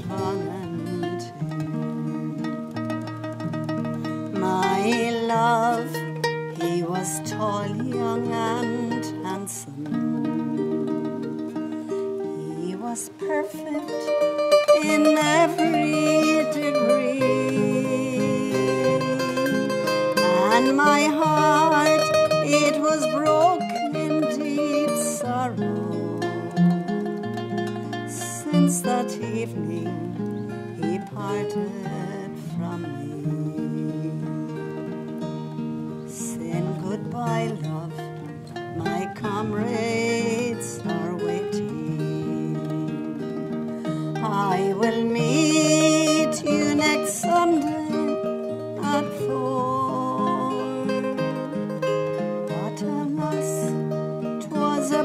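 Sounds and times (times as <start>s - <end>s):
woman singing a slow ballad: 0.0s - 3.2s, 4.0s - 35.2s, 36.0s - 55.0s
plucked mandolin: 0.0s - 55.0s
strummed acoustic guitar: 0.0s - 55.0s.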